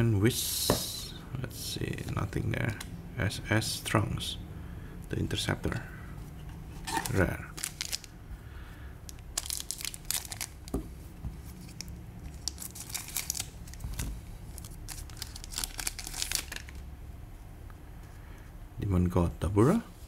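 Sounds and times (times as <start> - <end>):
foil pack tearing and crinkling: 6.9 - 8.1, 9.2 - 10.8, 11.6 - 16.8.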